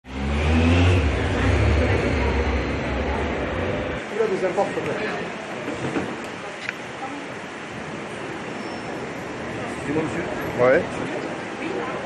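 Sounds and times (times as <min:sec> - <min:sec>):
motorbike engine passing by: 0:00.1 - 0:03.3.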